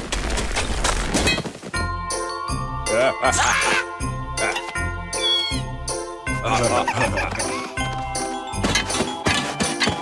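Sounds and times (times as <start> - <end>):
cartoon music score: 2.7 - 10.0.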